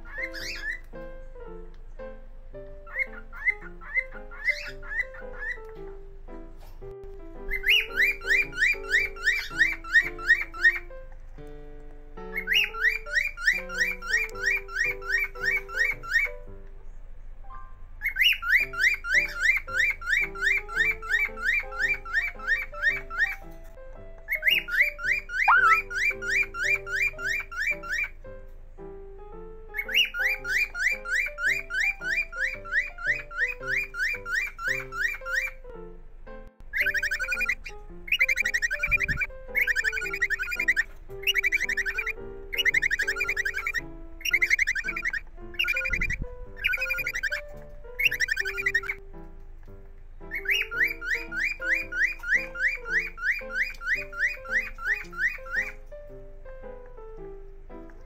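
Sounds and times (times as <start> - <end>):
cockatiel chirping: 0.0 - 11.6, 12.2 - 17.0, 18.0 - 28.4, 29.7 - 35.8, 36.6 - 49.0, 49.7 - 58.0
soft background music: 0.0 - 58.0.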